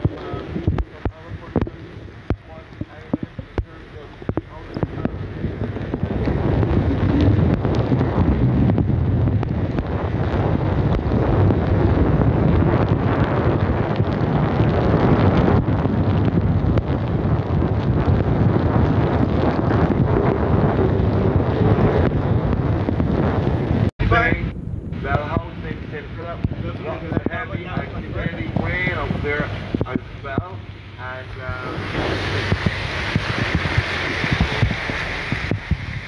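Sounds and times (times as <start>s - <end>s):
tyres hissing on wet road: 0.0s - 8.6s, 25.1s - 36.0s
rain: 0.0s - 36.0s
wind buffeting microphone: 0.0s - 36.0s.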